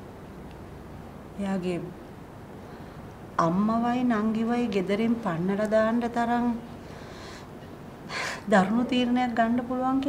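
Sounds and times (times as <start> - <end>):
woman speaking: 1.4 - 2.0, 3.4 - 6.7, 8.4 - 10.0
sharp intake of breath: 6.8 - 8.4.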